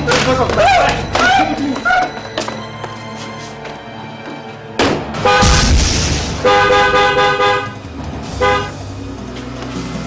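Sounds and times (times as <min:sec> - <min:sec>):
car horn honking: 0:05.2 - 0:05.6, 0:06.4 - 0:08.8.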